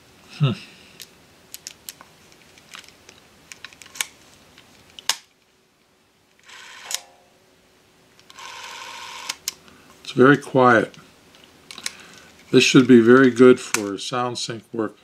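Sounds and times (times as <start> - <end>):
clockwork camera motor whirring: 6.4 - 7.0, 8.3 - 9.4.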